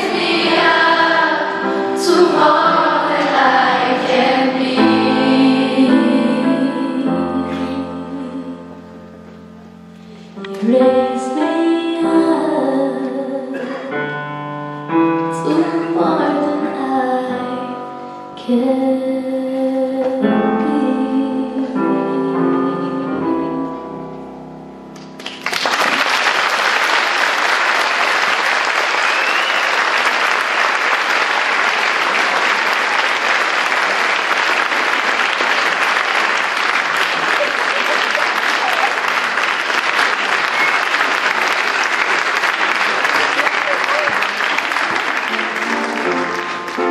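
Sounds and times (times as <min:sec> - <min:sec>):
audience applause: 0:00.0 - 0:01.5, 0:25.2 - 0:46.9
piano chord: 0:00.0 - 0:19.0, 0:45.2 - 0:46.9.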